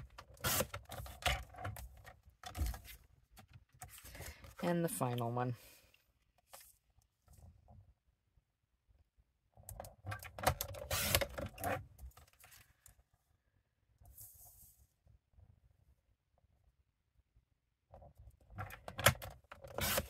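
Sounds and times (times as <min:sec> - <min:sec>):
paper trimmer cutting cardstock: 0:19.7 - 0:20.0.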